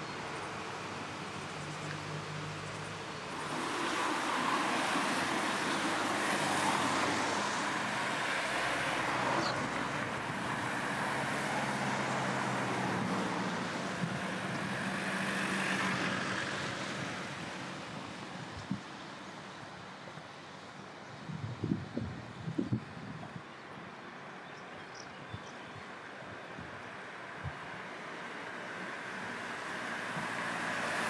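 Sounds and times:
vehicles passing: 0.0 - 31.0.

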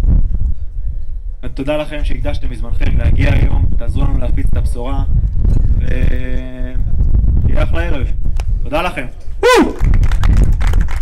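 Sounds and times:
crowd whoop: 9.4 - 9.9
audience applauding: 9.8 - 11.0.

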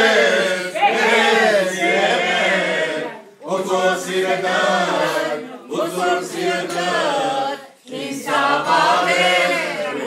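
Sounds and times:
men singing unaccompanied: 0.0 - 10.0.

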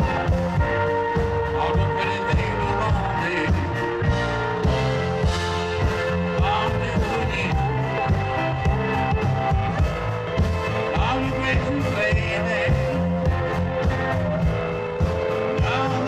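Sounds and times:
upright bass line: 0.0 - 16.0
drum hits: 3.5 - 11.2.

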